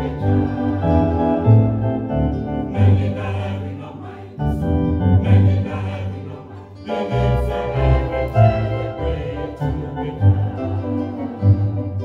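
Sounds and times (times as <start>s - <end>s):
electronic keyboard chords and bass: 0.0s - 3.5s, 4.4s - 6.0s
choir singing a hymn: 0.0s - 12.0s.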